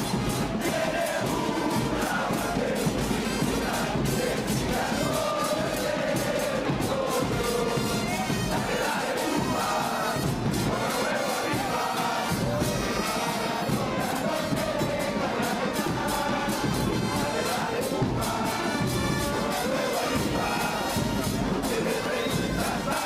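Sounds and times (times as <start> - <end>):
brass instruments: 0.0 - 23.0
crowd singing a chant: 0.0 - 23.0
drums keeping a steady beat: 0.0 - 23.0.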